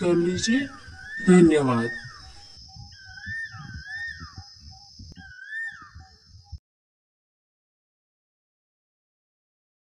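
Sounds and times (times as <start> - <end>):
whistle-like gliding tone: 0.0 - 6.6.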